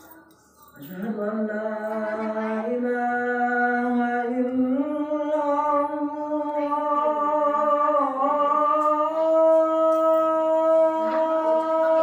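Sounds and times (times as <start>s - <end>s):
person chanting long notes: 1.0s - 12.0s.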